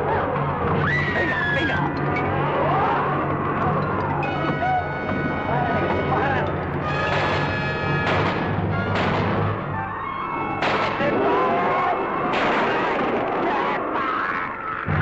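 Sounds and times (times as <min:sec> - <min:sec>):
voices shouting: 0:00.0 - 0:08.0, 0:08.6 - 0:14.8
dramatic film music: 0:00.0 - 0:15.0
rifle shots: 0:07.0 - 0:09.6, 0:10.6 - 0:11.2, 0:12.3 - 0:13.8.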